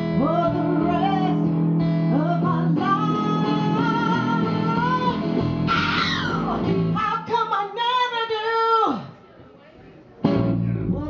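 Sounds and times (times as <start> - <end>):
woman singing: 0.0 - 5.3, 6.3 - 9.1
electric guitar: 0.0 - 7.4, 10.2 - 11.0.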